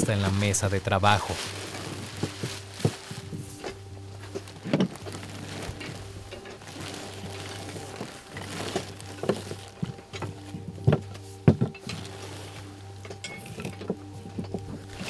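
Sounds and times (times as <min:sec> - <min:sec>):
background music sustained tones: 0:00.0 - 0:15.0.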